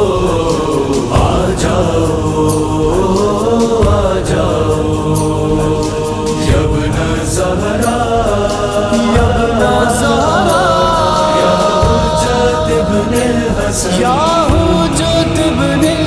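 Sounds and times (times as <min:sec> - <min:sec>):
man singing long notes: 0:00.0 - 0:16.0
vocal backing: 0:00.0 - 0:16.0.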